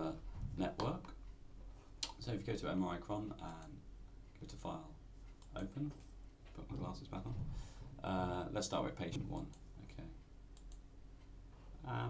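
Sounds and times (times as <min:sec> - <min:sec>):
low steady hum: 0:00.0 - 0:12.0
faint computer mouse clicks: 0:10.6 - 0:10.8.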